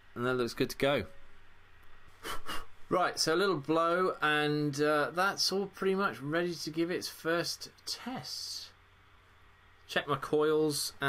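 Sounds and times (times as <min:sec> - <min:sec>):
short puff of breath: 0:02.2 - 0:02.8.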